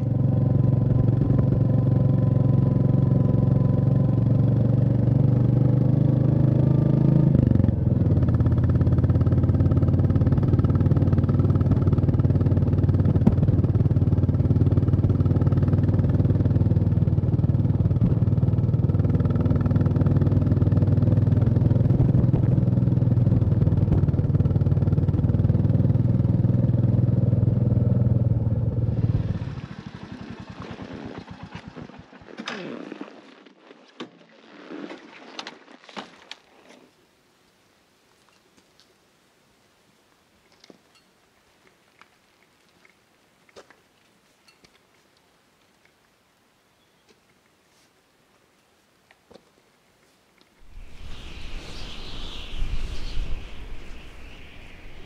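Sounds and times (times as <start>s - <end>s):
motorcycle engine running: 0.0s - 29.0s
quiet hiss: 36.4s - 55.0s.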